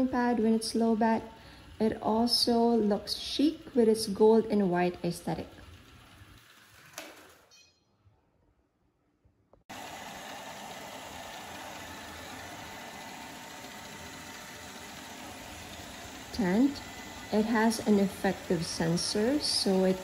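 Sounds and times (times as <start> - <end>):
robot vacuum whirring: 9.7 - 20.0.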